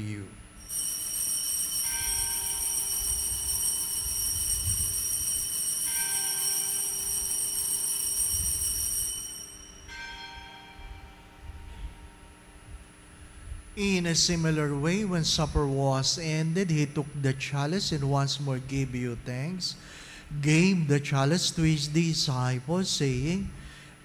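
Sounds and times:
small bells ringing: 0.6s - 12.5s.

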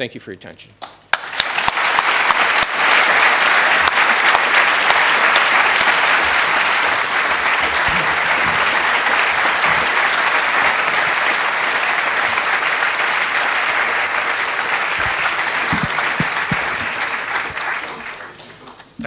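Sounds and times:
large audience applauding: 1.1s - 19.0s.

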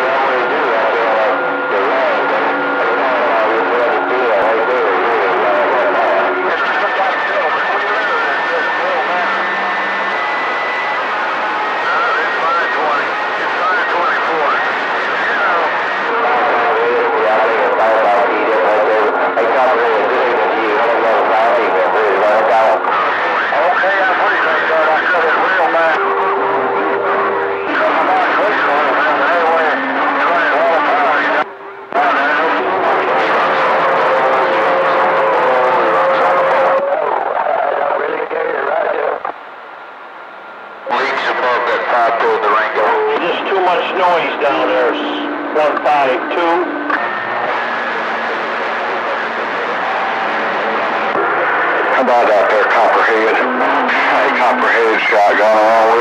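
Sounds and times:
garbled radio voices: 0.0s - 39.4s, 40.7s - 56.0s
radio static: 0.0s - 56.0s.

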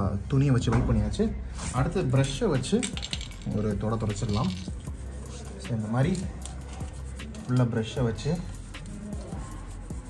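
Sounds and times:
background music: 0.0s - 10.0s
toothbrush scrubbing a chain: 2.8s - 10.0s.

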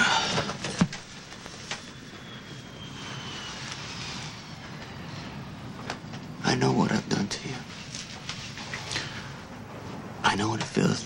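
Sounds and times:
faint high whine: 0.0s - 11.0s
jet engines droning in cabin: 0.0s - 11.0s.

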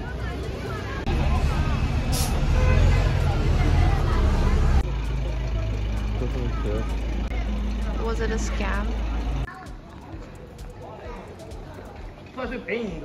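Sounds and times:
people talking: 0.0s - 12.1s
low traffic rumble: 0.0s - 13.0s.

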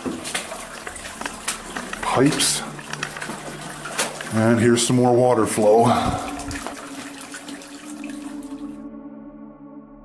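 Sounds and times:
water flowing and splashing: 0.0s - 8.8s.

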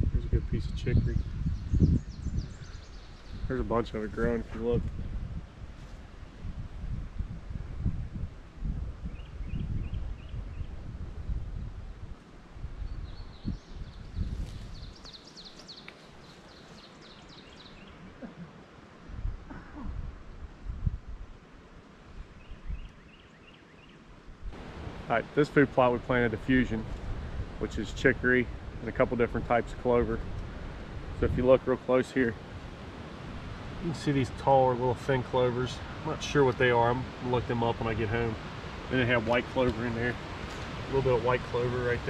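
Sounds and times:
songbirds singing: 0.0s - 4.5s, 9.0s - 11.7s, 12.8s - 18.8s, 22.4s - 29.0s
low rumbling on microphone: 0.0s - 15.0s, 17.7s - 21.4s, 24.3s - 42.0s.

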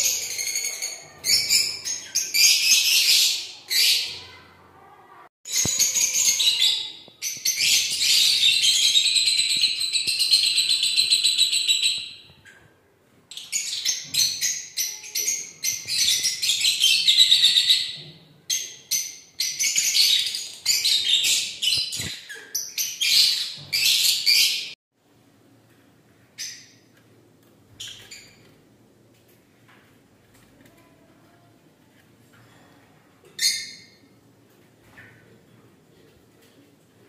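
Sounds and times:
birds chirping high-pitched: 0.0s - 4.5s, 5.5s - 12.7s, 13.3s - 24.8s, 27.7s - 28.5s.

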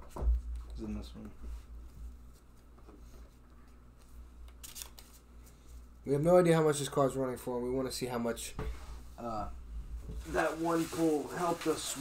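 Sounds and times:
low room hum: 0.0s - 12.0s
trading cards being handled: 2.3s - 5.7s
crisp rustle of cards: 3.6s - 5.8s, 10.2s - 12.0s.

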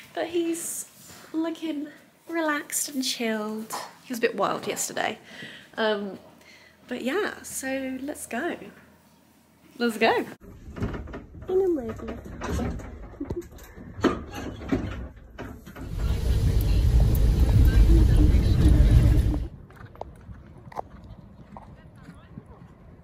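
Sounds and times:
woman laughing: 13.2s - 13.6s
car road and engine rumble: 15.8s - 19.5s.

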